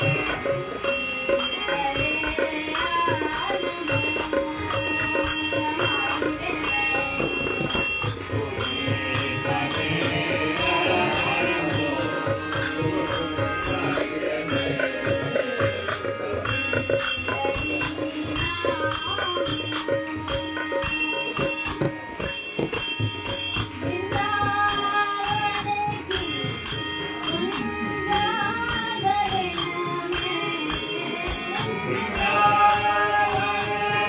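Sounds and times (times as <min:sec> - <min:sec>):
devotional singing: 0:00.0 - 0:22.0, 0:27.2 - 0:34.0
small hand cymbals ringing: 0:00.0 - 0:34.0.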